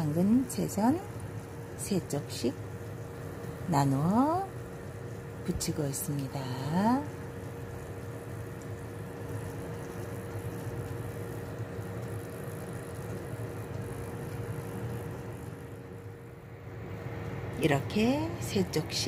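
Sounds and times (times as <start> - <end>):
pancakes sizzling in oil: 0.0 - 16.2
steady low hum: 0.0 - 19.0.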